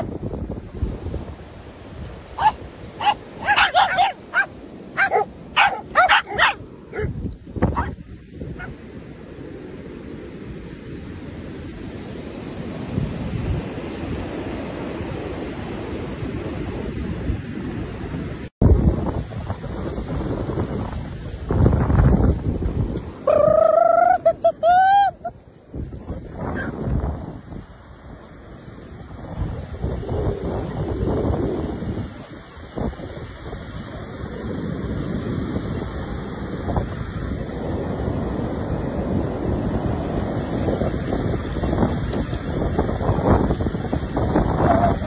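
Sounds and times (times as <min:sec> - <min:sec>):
wind on microphone: 0:00.0 - 0:09.0, 0:12.1 - 0:45.0
dogs barking and yipping: 0:02.3 - 0:08.9, 0:23.1 - 0:25.5, 0:26.4 - 0:26.8, 0:43.5 - 0:45.0
dog whining cries: 0:23.3 - 0:25.3.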